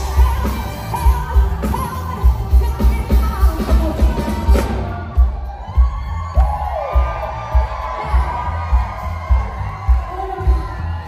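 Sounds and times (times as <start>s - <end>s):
live soul band playing: 0.0s - 11.0s
audience cheering: 3.8s - 11.0s.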